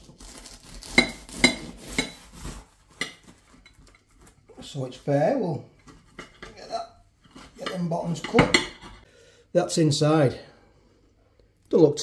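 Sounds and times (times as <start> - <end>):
bread knife sawing through pie crust: 0.0 - 2.8.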